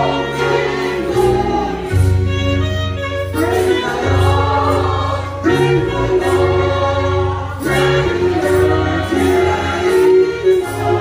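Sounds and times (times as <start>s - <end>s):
gospel choir singing: 0.0s - 11.0s
instrumental backing with bass: 0.0s - 11.0s.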